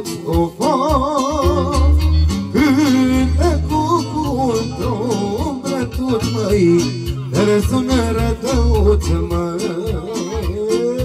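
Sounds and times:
amplified instrumental backing: 0:00.0 - 0:11.0
man singing into microphone: 0:00.0 - 0:11.0.

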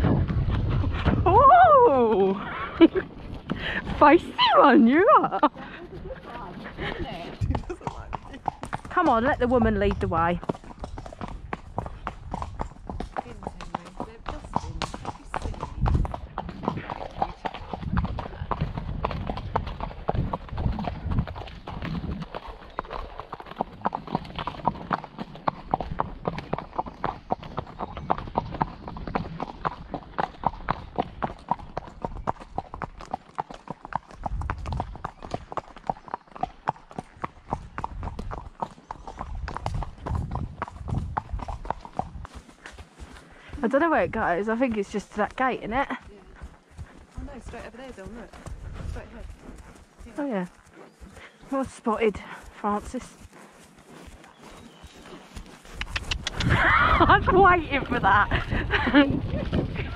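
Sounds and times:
horse hooves on wet tarmac: 0:00.0 - 0:59.9.

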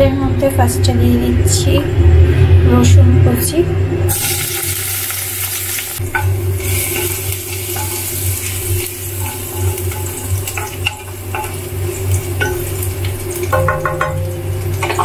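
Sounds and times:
steady low hum: 0:00.0 - 0:15.0
garlic sizzling in oil: 0:04.1 - 0:15.0
spatula scraping pan: 0:06.1 - 0:12.8.

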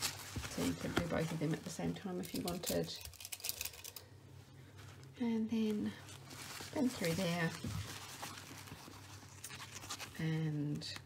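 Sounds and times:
fabric rustling and scratching: 0:00.0 - 0:02.4, 0:04.6 - 0:10.5.

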